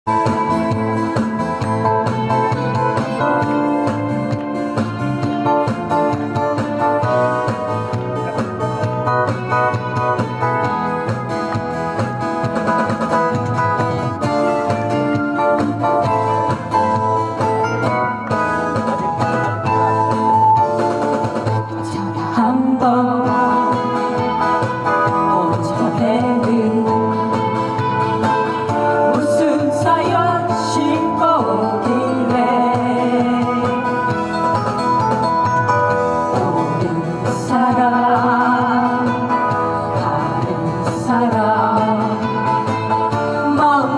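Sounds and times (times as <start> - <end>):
person singing: 0.1 - 11.6, 12.7 - 34.8, 35.9 - 43.9
acoustic guitars strumming: 0.1 - 43.9.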